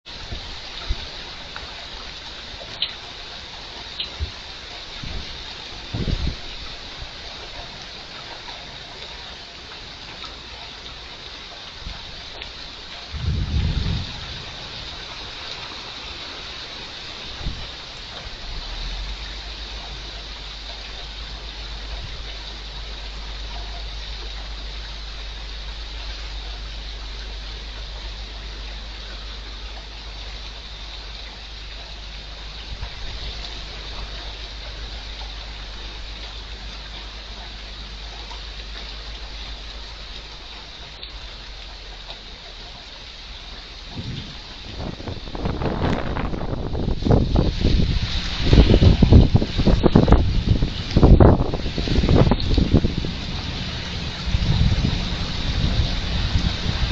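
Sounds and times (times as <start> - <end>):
heavy rain falling: 0.0 - 56.9
gusty rumbling: 5.0 - 6.8, 13.0 - 16.4, 43.8 - 56.9.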